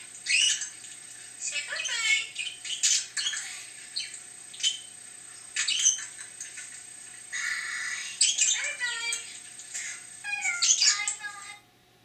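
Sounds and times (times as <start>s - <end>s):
budgerigar chirping and warbling: 0.2s - 0.7s, 1.7s - 4.9s, 5.6s - 6.2s, 8.2s - 9.0s, 9.8s - 11.2s.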